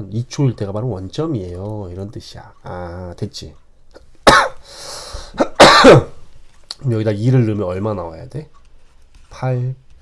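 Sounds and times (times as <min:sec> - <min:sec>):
man coughing: 0:04.2 - 0:04.7, 0:05.3 - 0:06.2.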